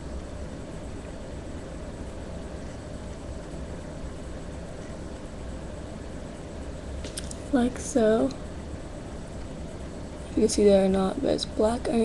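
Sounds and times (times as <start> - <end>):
steady background hum and hiss: 0.0 - 12.0.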